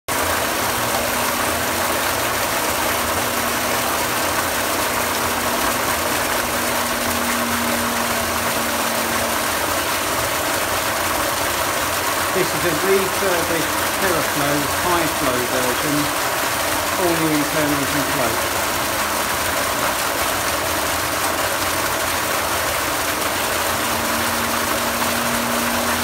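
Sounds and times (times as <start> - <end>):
faint steady hum: 0.1 - 26.0
water rushing into tank: 0.1 - 26.0.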